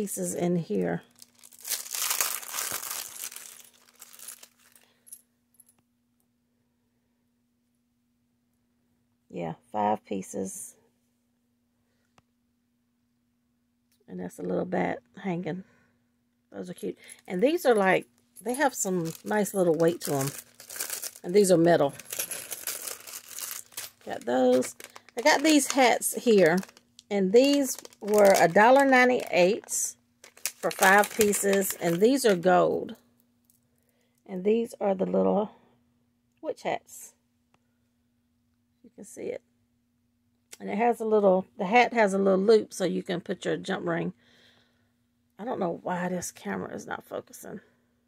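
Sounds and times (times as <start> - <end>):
plastic bag crinkling: 0.8 - 5.0, 17.2 - 32.6
small metal charms clinking: 1.4 - 4.8, 17.6 - 26.8.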